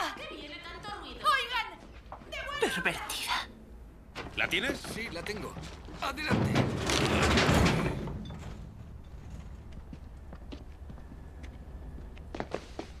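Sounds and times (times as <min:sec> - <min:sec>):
wooden object crashing into dumpster: 0:06.2 - 0:08.6.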